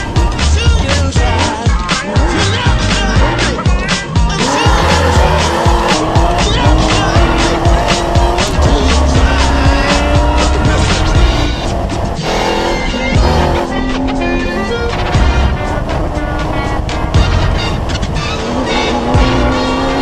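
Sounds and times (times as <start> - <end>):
music with steady beat: 0.0 - 20.0
truck engine revving: 0.0 - 20.0.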